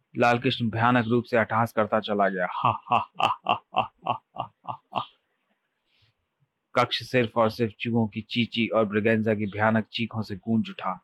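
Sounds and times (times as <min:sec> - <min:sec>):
man laughing menacingly: 0:02.5 - 0:05.2.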